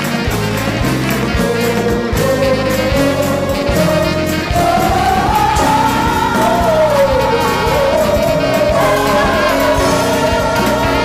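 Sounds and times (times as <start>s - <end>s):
gospel choir singing: 0.0s - 11.0s
live band playing: 0.0s - 11.0s.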